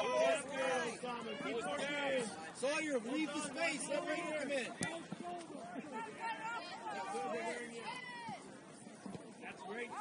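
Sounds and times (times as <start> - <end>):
people talking at once: 0.0 - 8.5.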